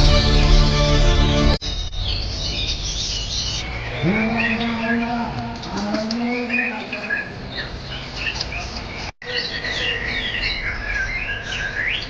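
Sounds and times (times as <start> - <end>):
songbirds singing: 1.6 - 12.0.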